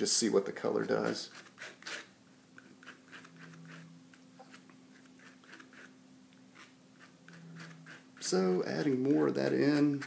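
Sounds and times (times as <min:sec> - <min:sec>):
palette knife scraping paint: 0:00.6 - 0:10.0.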